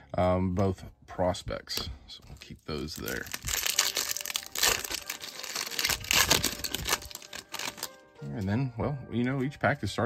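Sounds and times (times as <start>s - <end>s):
foil wrapper crinkling and tearing: 2.3s - 8.0s.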